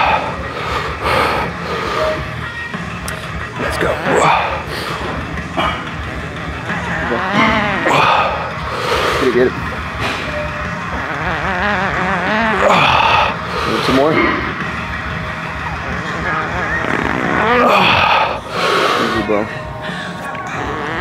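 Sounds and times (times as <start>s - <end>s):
man straining and groaning: 0.0s - 2.2s, 3.1s - 10.0s, 10.7s - 15.0s, 16.0s - 21.0s.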